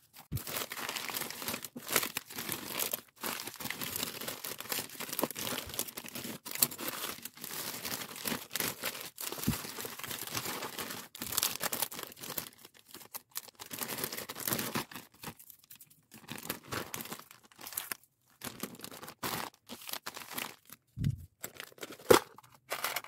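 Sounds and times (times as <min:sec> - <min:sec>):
plastic packaging crinkling: 0:00.1 - 0:23.0.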